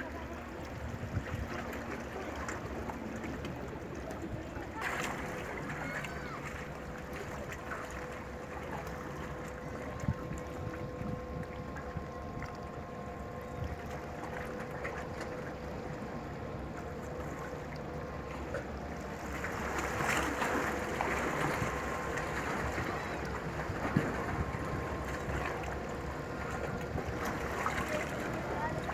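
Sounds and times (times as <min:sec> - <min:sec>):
water lapping: 0:00.0 - 0:28.9
wind on microphone: 0:00.8 - 0:01.6, 0:09.6 - 0:12.7.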